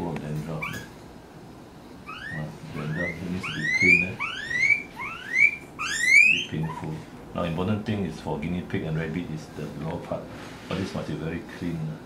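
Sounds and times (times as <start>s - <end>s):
guinea pig squealing: 0.6s - 0.9s, 2.0s - 7.0s.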